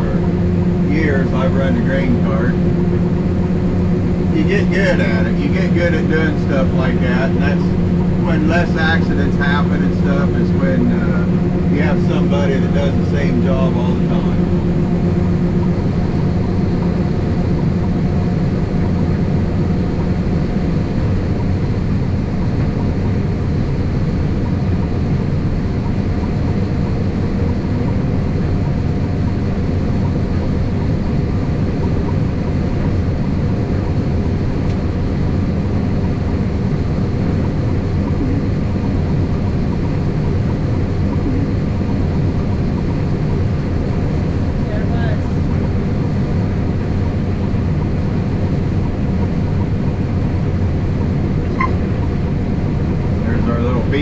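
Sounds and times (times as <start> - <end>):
combine harvester engine drone: 0.0 - 54.0.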